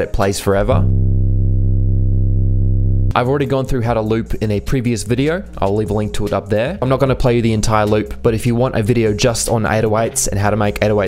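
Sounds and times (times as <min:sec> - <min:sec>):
deep sub-bass tone: 0:00.6 - 0:03.4.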